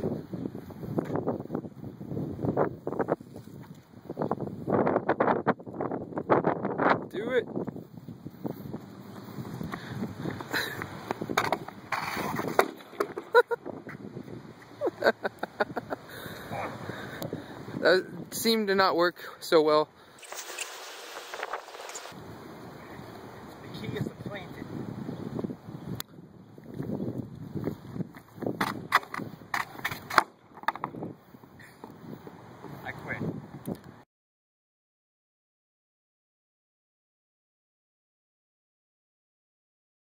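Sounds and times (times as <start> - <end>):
wind rumbling on microphone: 0.0 - 18.6, 20.6 - 30.2, 30.8 - 34.0
quick footsteps: 8.4 - 13.0
pole scraping on asphalt: 9.4 - 14.0, 20.2 - 22.2
wooden pole knocking on asphalt: 30.6 - 31.0.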